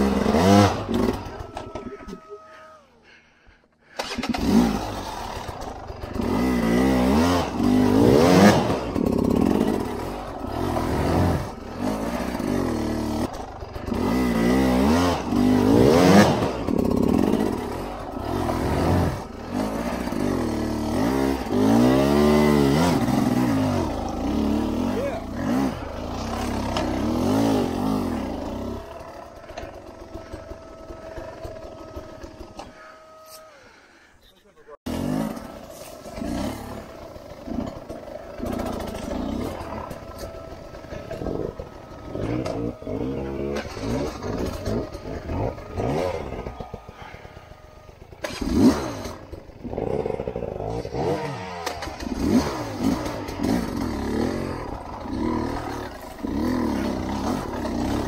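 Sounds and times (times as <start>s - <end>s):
dirt bike engine revving: 0.0s - 2.8s, 3.8s - 58.0s.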